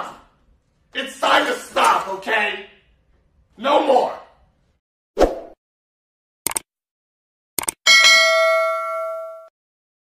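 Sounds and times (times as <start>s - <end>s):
quick clicks: 6.5s - 6.7s, 7.6s - 7.8s
bright bell ding: 7.9s - 9.5s.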